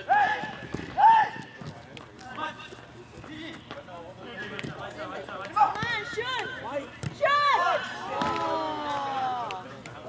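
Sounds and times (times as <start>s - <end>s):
footsteps of players running: 0.0s - 7.2s.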